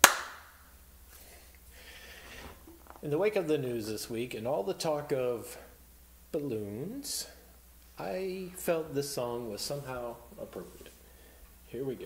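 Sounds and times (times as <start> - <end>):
sharp hand clap: 0.0 - 0.6.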